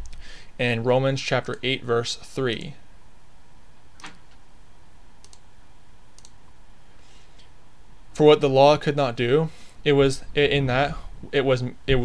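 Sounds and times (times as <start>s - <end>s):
low room hiss: 0.0s - 12.0s
soft computer clicks: 5.2s - 5.5s, 6.2s - 6.4s.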